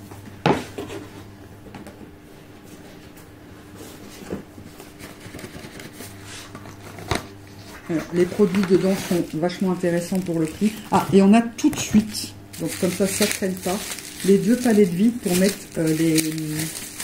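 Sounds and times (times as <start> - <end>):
steady low hum: 0.0 - 17.0
cardboard rustling: 7.9 - 11.0, 12.6 - 17.0.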